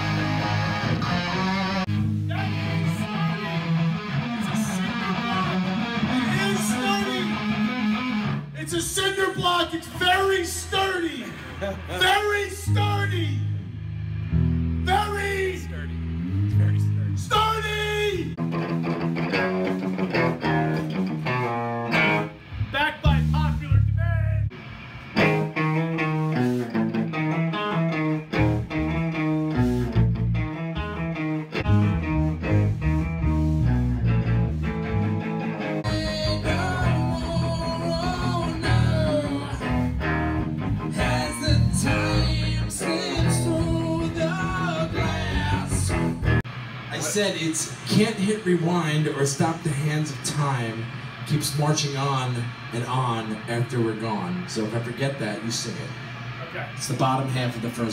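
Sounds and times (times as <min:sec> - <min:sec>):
rock band playing: 0:00.0 - 0:55.4
amplified electric guitar riffs: 0:00.0 - 0:57.9.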